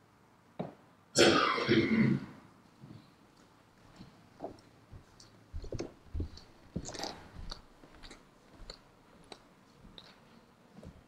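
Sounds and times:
person clearing throat: 1.2 - 2.4.

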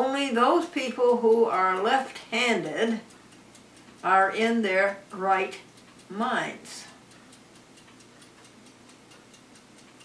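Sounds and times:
faint even ticking: 0.0 - 10.0.

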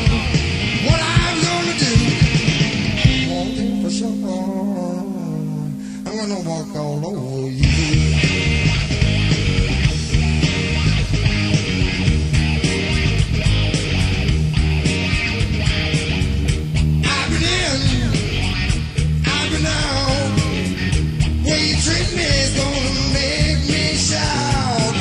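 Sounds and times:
person singing: 0.0 - 2.3, 3.1 - 8.2, 17.0 - 18.4, 19.2 - 20.8, 21.4 - 25.0
rock band playing: 0.0 - 25.0.

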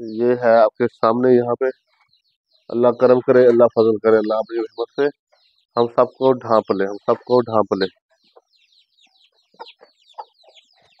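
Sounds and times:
chickens clucking: 0.0 - 11.0
faint high-pitched chirping: 0.0 - 11.0.

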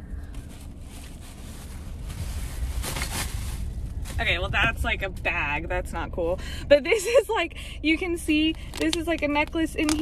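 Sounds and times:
steady low rumble: 0.0 - 10.0
plastic bag rustling and crinkling: 0.3 - 4.6.

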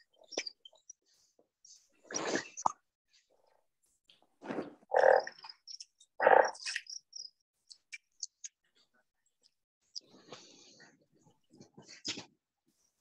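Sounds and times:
frog croaking: 4.9 - 6.9.

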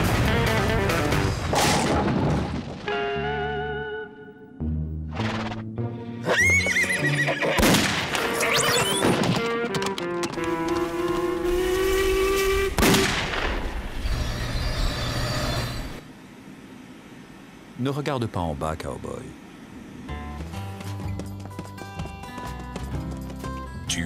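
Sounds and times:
cartoon soundtrack music: 2.9 - 7.6.

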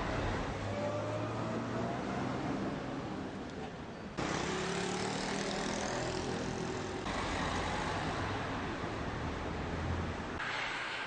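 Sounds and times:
cars passing: 4.2 - 11.0.

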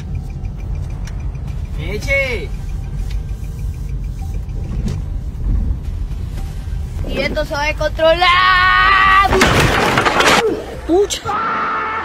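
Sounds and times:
car rumbling from inside cabin: 0.0 - 9.2.

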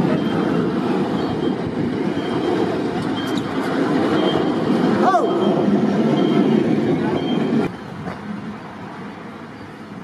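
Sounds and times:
train wheels rolling on rails: 0.0 - 10.0.

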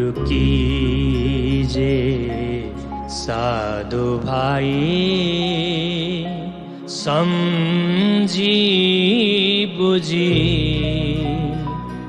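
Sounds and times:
musical accompaniment with drone: 0.0 - 12.0
person singing long wavering notes: 0.0 - 12.0.

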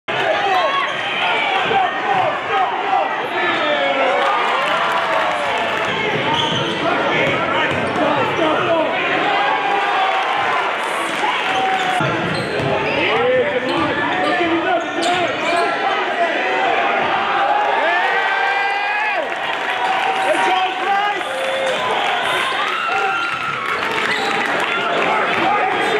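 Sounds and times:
crowd voices din: 0.1 - 25.9.

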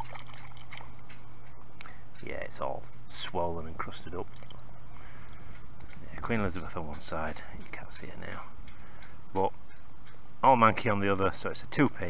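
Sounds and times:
water sloshing and trickling: 0.0 - 1.4, 3.7 - 5.3
low hum: 0.0 - 11.1.

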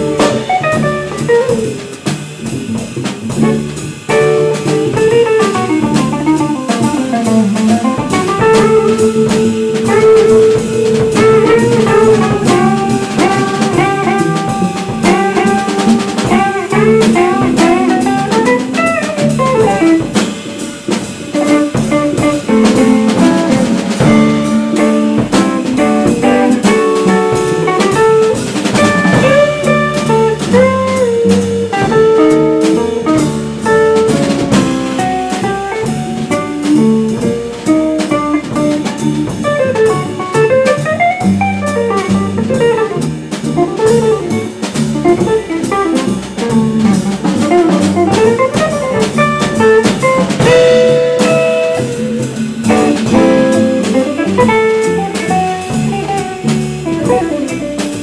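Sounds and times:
drum kit with cymbals: 0.0 - 58.0
electric guitar melody: 0.0 - 58.0
plucked double bass: 0.0 - 58.0.

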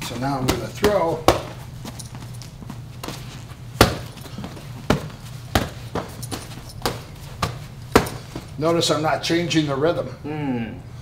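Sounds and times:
low steady hum: 0.0 - 11.0
boxing gloves smacking: 0.2 - 8.6.

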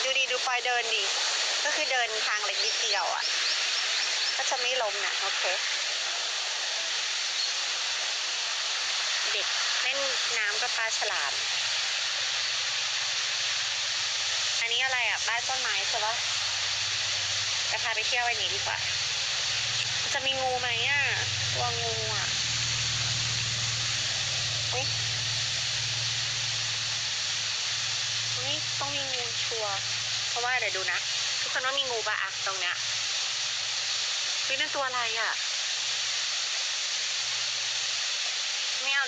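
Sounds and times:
woman talking: 0.0 - 3.3, 4.4 - 5.6, 9.2 - 11.4, 14.6 - 16.2, 17.7 - 18.9, 20.0 - 22.4, 24.7 - 25.0, 28.4 - 29.8, 30.4 - 32.8, 34.5 - 35.4, 38.8 - 39.0
steady hiss: 0.0 - 39.0
low hum: 18.4 - 30.4.

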